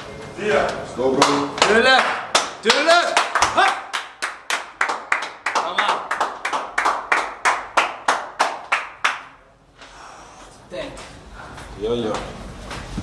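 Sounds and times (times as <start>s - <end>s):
rhythmic hand clapping: 1.1s - 9.4s
person shouting: 2.9s - 3.9s.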